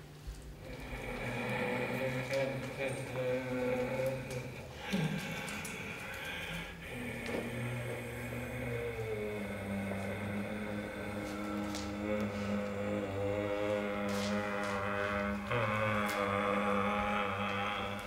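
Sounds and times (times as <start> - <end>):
low sustained drone: 0.0 - 18.0.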